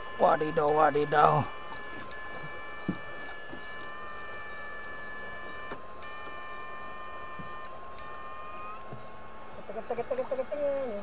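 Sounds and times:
high-pitched electronic whine: 0.0s - 11.0s.

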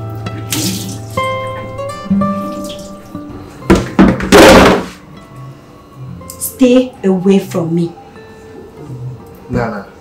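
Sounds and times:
film music: 0.0s - 4.0s.

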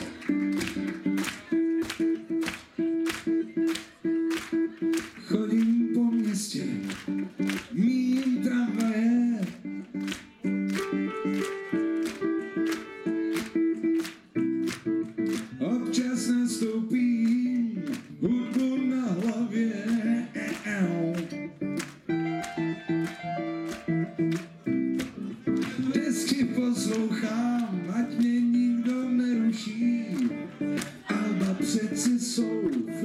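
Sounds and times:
live band playing fast song: 8.6s - 15.6s, 20.4s - 28.4s
gliding vocal line: 25.2s - 33.0s.

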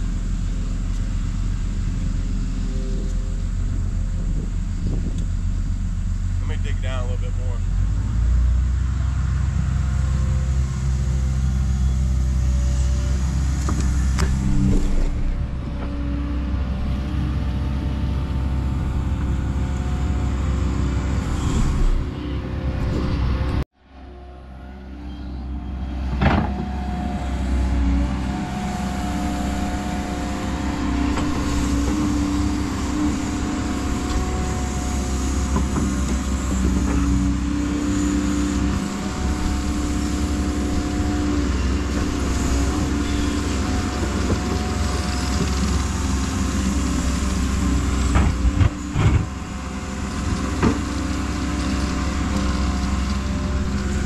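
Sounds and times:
excavator diesel engine running: 0.0s - 54.0s
hydraulics whining: 0.8s - 54.0s.

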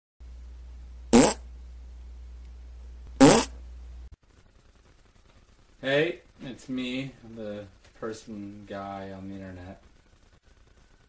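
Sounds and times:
steady low hum: 0.2s - 11.0s.

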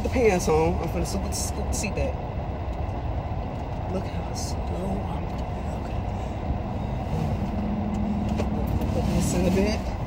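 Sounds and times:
low vehicle rumble inside car: 0.0s - 10.0s.

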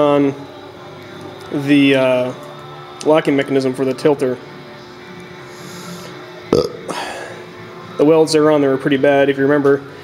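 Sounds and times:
faint background music: 0.0s - 10.0s
man's rough throat sound: 6.5s - 7.3s.

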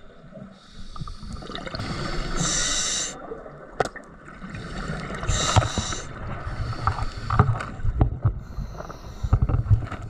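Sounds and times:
breath hissing through regulator: 0.6s - 3.2s, 4.7s - 7.6s.

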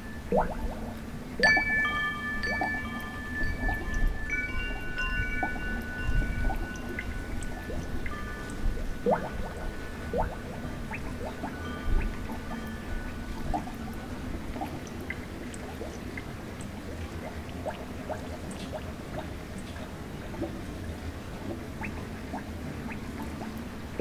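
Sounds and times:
rising plinks like water drips: 0.0s - 24.0s
chime-like ringing tones: 1.4s - 14.6s.

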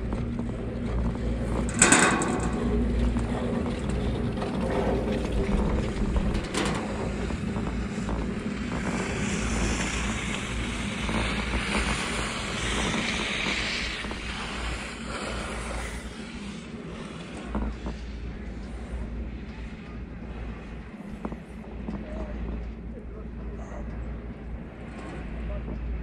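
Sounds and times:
chairlift sheave wheel clack: 0.0s - 26.0s
wind and motion rumble: 0.0s - 26.0s.

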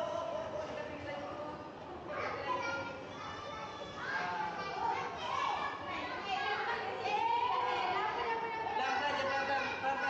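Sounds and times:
young children chattering: 1.9s - 10.0s.

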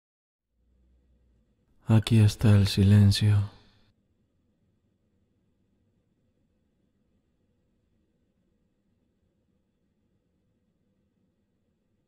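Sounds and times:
man speaking: 1.8s - 3.6s.

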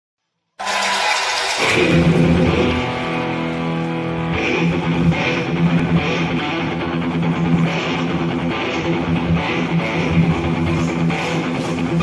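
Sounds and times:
karaoke backing track: 0.6s - 12.0s.

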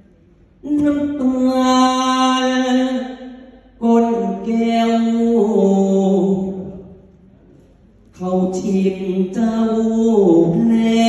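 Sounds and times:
man singing into a microphone: 8.2s - 11.0s.

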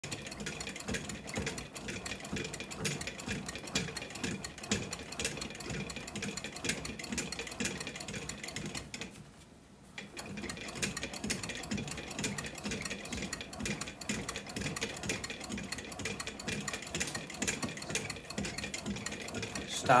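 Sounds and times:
bat rolling machine clicking and crackling: 10.0s - 20.0s.

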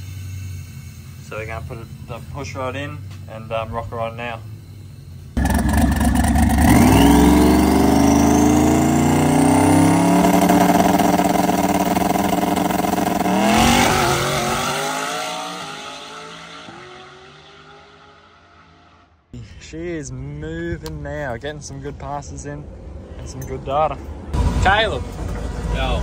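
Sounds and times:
drag car engine revving hard: 5.4s - 19.0s.

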